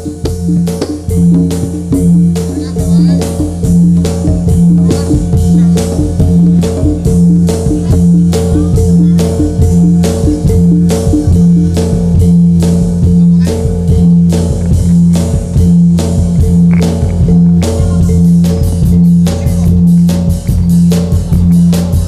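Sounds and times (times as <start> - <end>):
repeating low bass notes: 0.0 - 22.0
sharp percussion strokes: 0.0 - 22.0.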